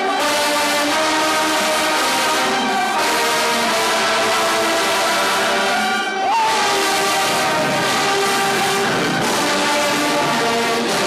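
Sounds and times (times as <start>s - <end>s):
brass band playing chords: 0.0s - 11.0s.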